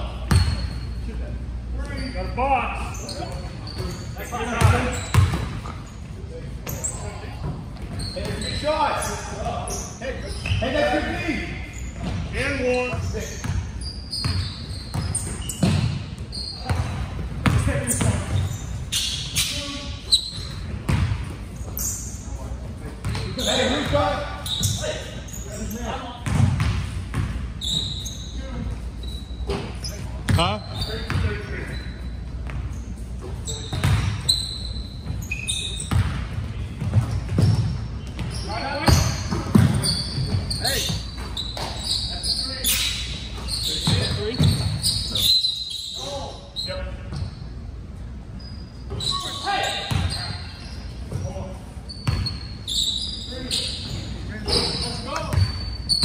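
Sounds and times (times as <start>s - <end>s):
sneaker squeaks: 0.0s - 56.0s
basketball bouncing: 4.6s - 5.8s, 14.2s - 16.0s, 20.8s - 21.4s, 26.2s - 27.4s, 33.7s - 34.2s, 35.9s - 38.3s, 38.9s - 40.4s, 49.9s - 50.2s.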